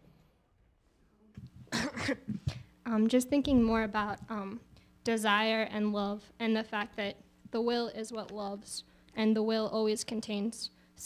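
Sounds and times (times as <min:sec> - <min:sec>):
person coughing: 0:01.6 - 0:02.7.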